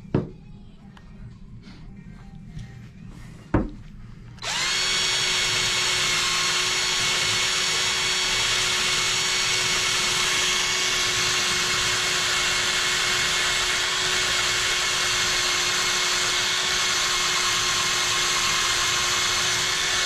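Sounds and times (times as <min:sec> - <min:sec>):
power drill whining: 0:04.4 - 0:20.0.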